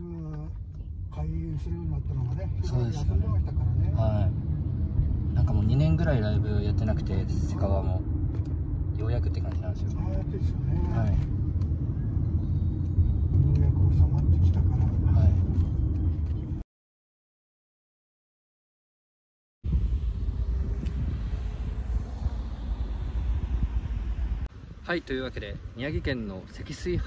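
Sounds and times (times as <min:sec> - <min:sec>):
taxi engine rumble from inside: 0:00.0 - 0:16.6, 0:19.7 - 0:24.6.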